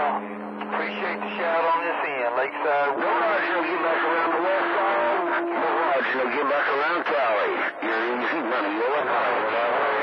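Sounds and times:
low steady tone: 0:00.0 - 0:05.6
higher steady tone: 0:00.0 - 0:05.7
garbled radio voices: 0:00.0 - 0:10.0.

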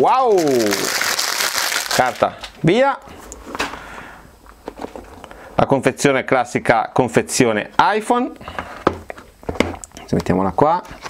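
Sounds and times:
packaging rustling: 0:00.0 - 0:02.6.

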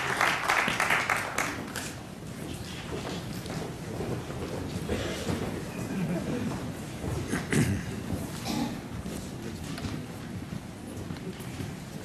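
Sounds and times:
footsteps of hard-soled shoes: 0:02.3 - 0:12.0.

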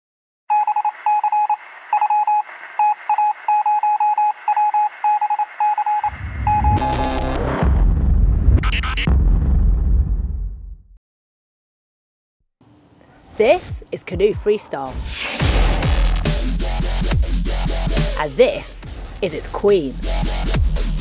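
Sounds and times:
morse code beeps: 0:00.5 - 0:07.2
whoosh: 0:06.1 - 0:10.6, 0:14.9 - 0:16.4
deep bass logo sting: 0:06.1 - 0:10.9, 0:15.4 - 0:17.6.

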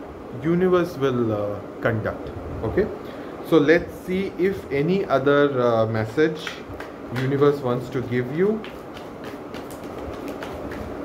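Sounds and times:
cards being shuffled: 0:06.4 - 0:11.0.

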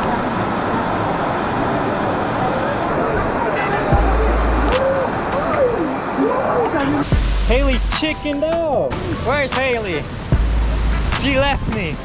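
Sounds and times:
waterfall rushing: 0:00.0 - 0:12.0
background music: 0:03.6 - 0:06.2, 0:07.0 - 0:12.0.

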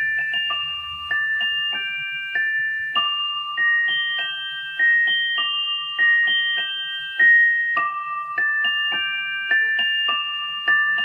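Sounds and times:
pocket watch chime melody: 0:00.0 - 0:11.0.

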